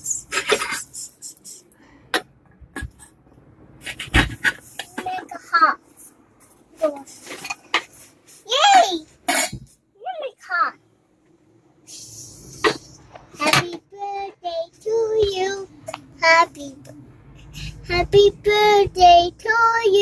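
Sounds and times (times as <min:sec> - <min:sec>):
toddler making wordless sounds: 0:04.9 - 0:05.8, 0:08.4 - 0:09.1.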